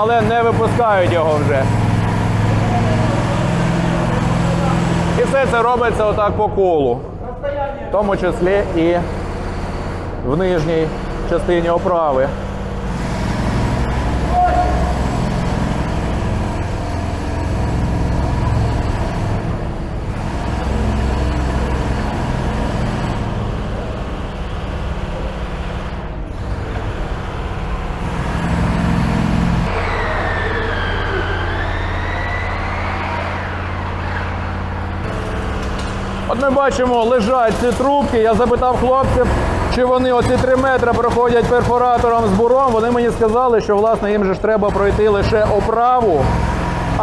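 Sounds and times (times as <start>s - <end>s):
construction machinery drone: 0.0s - 47.0s
high machine whine: 0.0s - 47.0s.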